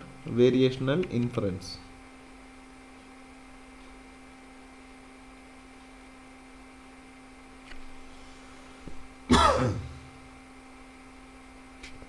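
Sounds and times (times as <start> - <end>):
person clearing throat: 9.3 - 10.1.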